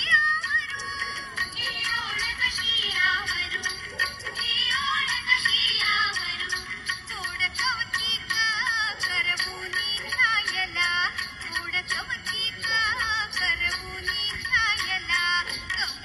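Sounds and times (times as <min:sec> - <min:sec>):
high-pitched voice singing: 0:00.0 - 0:16.0
steady percussion strikes: 0:00.0 - 0:16.0.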